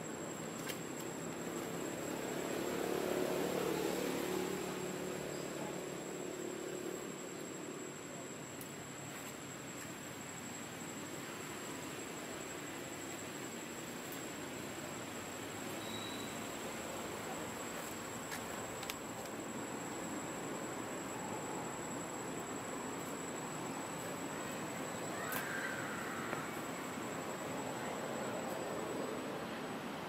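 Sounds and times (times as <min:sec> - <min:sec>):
high insect whine: 0:00.0 - 0:30.0
outdoor background hiss: 0:00.0 - 0:30.0.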